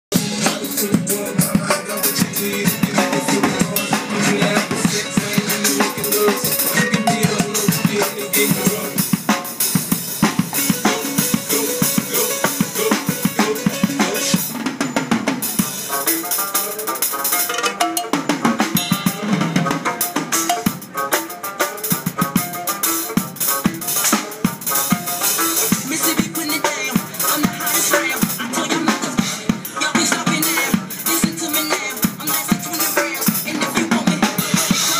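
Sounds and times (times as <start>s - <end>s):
pitched electronic sounds: 0.1s - 9.0s
drum kit playing fast: 0.1s - 34.9s.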